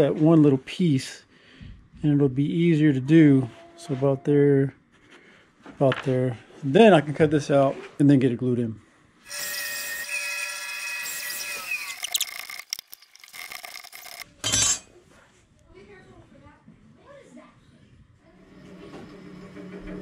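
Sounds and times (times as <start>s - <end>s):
faint workshop sounds: 0.0s - 20.0s
power saw cutting wood: 9.3s - 14.2s
woodworking stroke: 9.3s - 14.2s.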